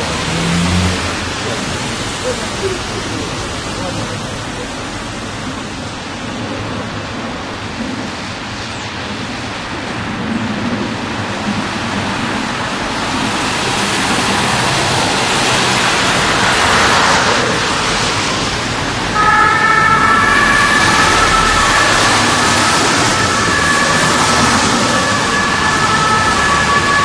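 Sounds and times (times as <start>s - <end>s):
vehicle approaching: 0.0s - 8.0s, 11.5s - 27.0s
road traffic rushing: 0.0s - 27.0s.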